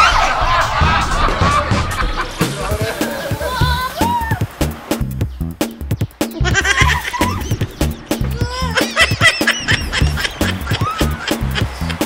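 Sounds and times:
background music with steady beat: 0:00.2 - 0:12.0.

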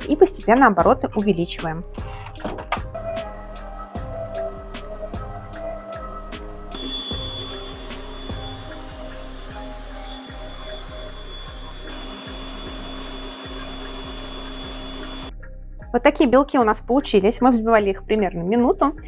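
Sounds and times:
background music with steady beat: 0:00.0 - 0:19.0
stand mixer motor whirring: 0:06.8 - 0:15.3.

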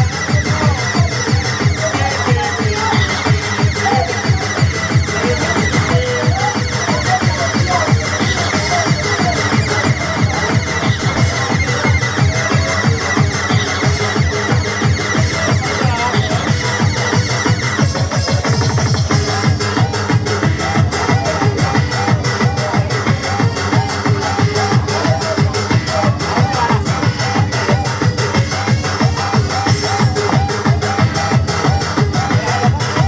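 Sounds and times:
electronic dance music: 0:00.0 - 0:33.0.

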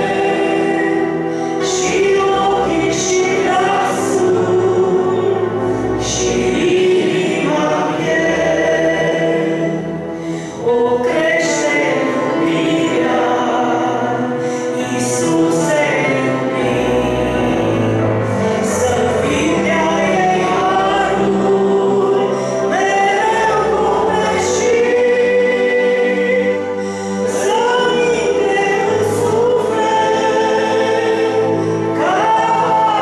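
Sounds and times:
electronic keyboard accompaniment: 0:00.0 - 0:33.0.

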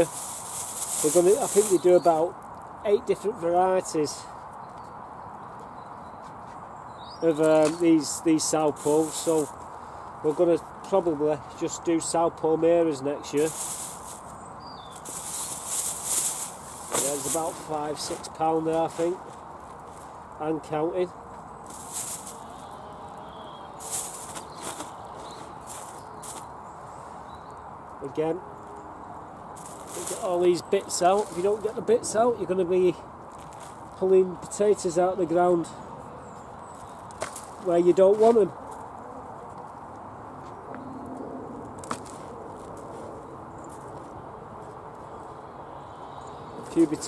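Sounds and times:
plastic bag rustling: 0:00.0 - 0:02.2, 0:13.3 - 0:20.2, 0:21.6 - 0:22.6, 0:23.8 - 0:26.5, 0:29.6 - 0:31.7
hands rustling potting compost: 0:00.0 - 0:03.7, 0:07.3 - 0:26.6, 0:29.5 - 0:35.6, 0:36.4 - 0:39.6
low steady background noise: 0:00.0 - 0:47.0
outdoor background noise: 0:00.0 - 0:47.0.

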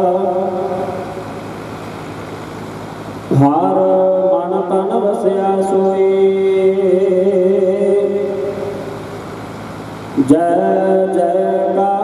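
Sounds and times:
man chanting held note: 0:00.0 - 0:01.2
steady hiss: 0:00.0 - 0:12.0.

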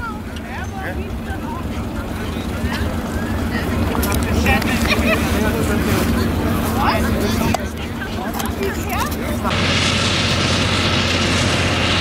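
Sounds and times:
people's voices: 0:00.0 - 0:09.6
farm machine engine running: 0:00.0 - 0:12.0.

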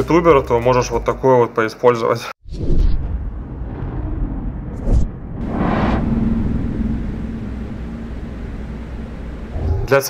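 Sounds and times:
whoosh: 0:02.5 - 0:09.9
low rumbling drone: 0:02.8 - 0:10.0.

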